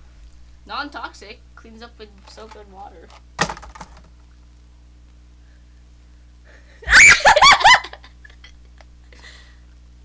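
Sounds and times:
high-pitched laughter: 6.8 - 8.5.

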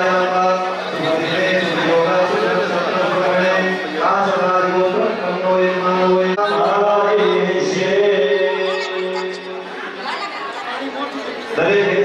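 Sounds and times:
people talking over one another: 0.0 - 12.0
louder voice: 4.1 - 10.2.

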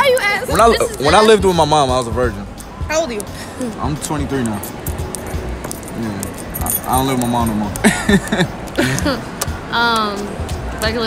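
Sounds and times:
scattered voices: 0.0 - 11.0
light metallic clinking: 4.1 - 8.5.

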